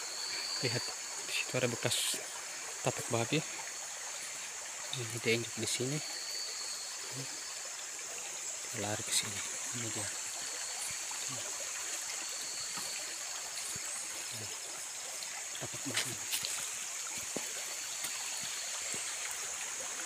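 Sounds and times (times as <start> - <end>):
high-pitched hiss: 0.0 - 20.0
stream rushing: 0.0 - 20.0
footsteps on gravel and leaves: 15.8 - 19.2.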